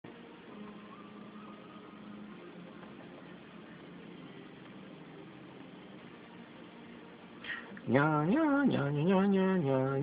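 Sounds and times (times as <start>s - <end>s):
faint hum and hiss: 0.0s - 10.0s.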